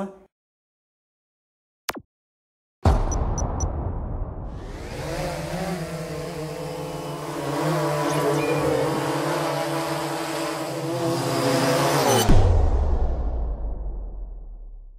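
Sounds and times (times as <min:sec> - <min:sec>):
drone propellers buzzing: 0:04.5 - 0:12.5.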